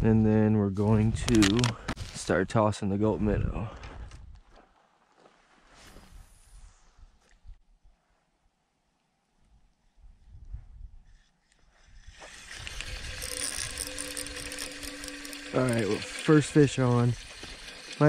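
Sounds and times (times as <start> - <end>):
spinning reel whirring: 11.4 - 18.0.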